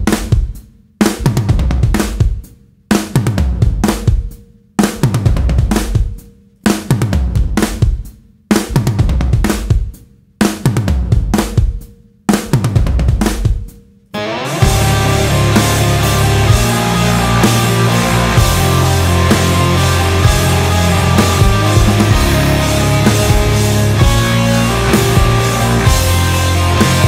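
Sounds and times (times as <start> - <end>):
rock drum kit stop-start pattern: 0.0 - 27.0
band with distorted guitar: 14.2 - 27.0.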